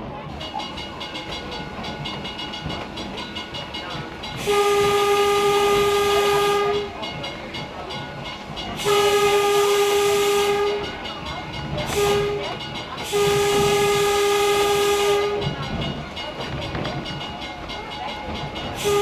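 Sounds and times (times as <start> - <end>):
rail car rumbling on rails: 0.0 - 19.0
train horn blasts: 4.4 - 7.0, 8.8 - 11.0, 11.8 - 15.6, 18.8 - 19.0.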